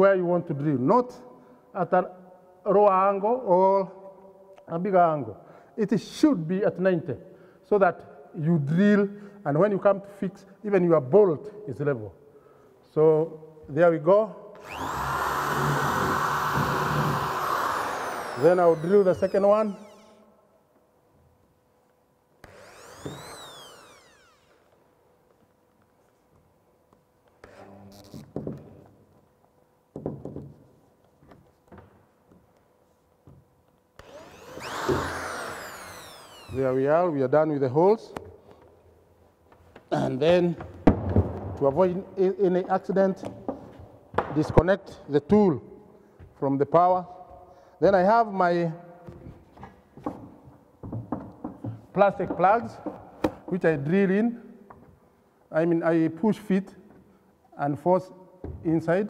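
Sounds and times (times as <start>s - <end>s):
electric drill boring into wood: 14.6s - 20.2s, 22.4s - 24.6s, 34.0s - 36.7s.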